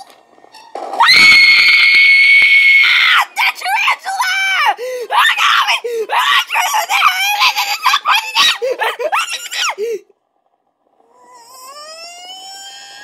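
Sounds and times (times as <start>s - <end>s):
wailing cry rising in pitch: 1.0s - 10.0s, 11.1s - 13.0s
cartoon character yelling: 3.1s - 10.0s.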